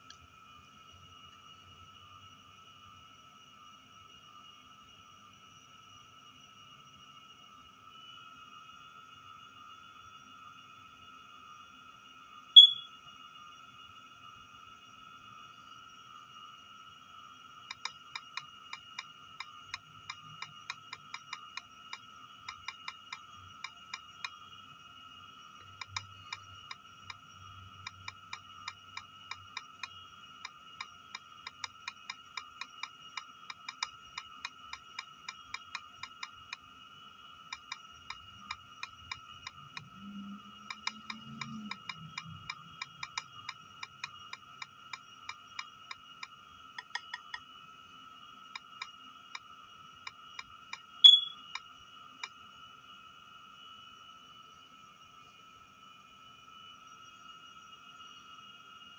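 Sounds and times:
faint high whine: 0.0 - 58.9
short bright blip: 12.6 - 12.9, 51.0 - 51.5
on-screen keyboard key clicks: 46.8 - 47.4, 51.0 - 51.4.

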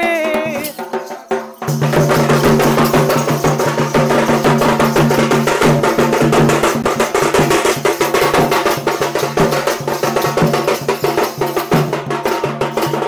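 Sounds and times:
barrel drum beaten in fast rhythm: 0.0 - 13.0.

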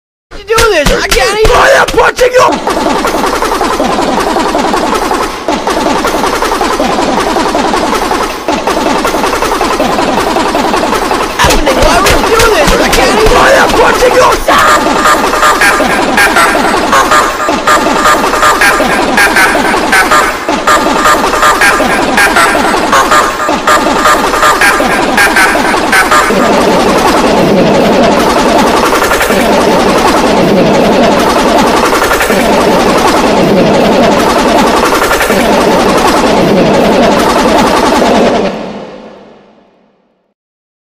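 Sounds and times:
stuttering pitch-shifted cartoon yelling: 0.4 - 38.6.

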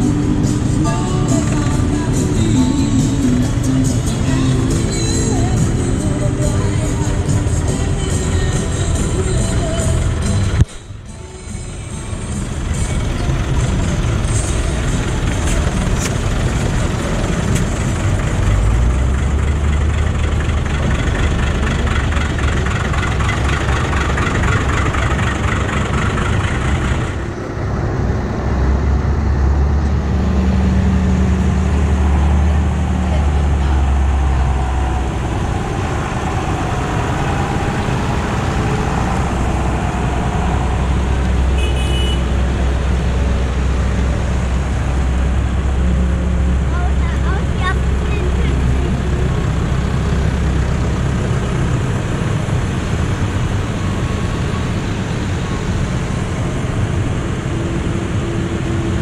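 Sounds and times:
tractor diesel engines driving past: 0.0 - 59.0.

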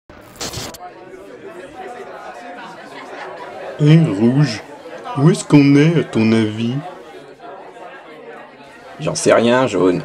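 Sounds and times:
murmur of many voices: 0.6 - 10.0.

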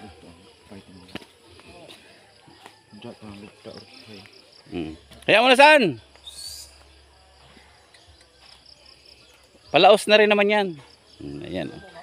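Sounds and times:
faint insect chirping: 0.0 - 12.0
high rising bird chirp: 3.7 - 12.0.

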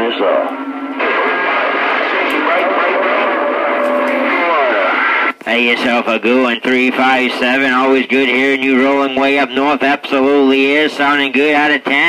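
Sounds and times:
muffled voice over radio: 0.0 - 12.0
radio static: 0.0 - 12.0.

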